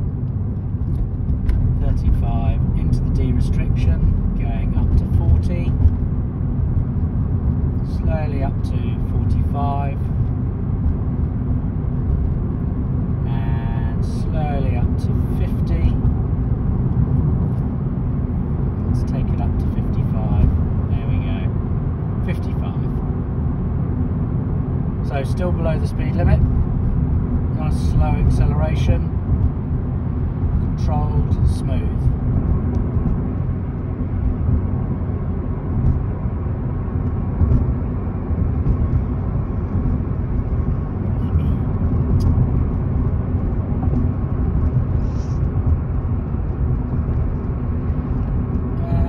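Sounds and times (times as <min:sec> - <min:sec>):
car engine and road drone: 0:00.0 - 0:49.0.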